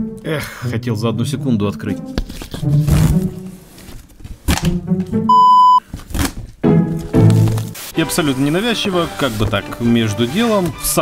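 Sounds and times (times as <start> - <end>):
background music: 0.0 - 11.0
censor bleep: 5.3 - 5.8.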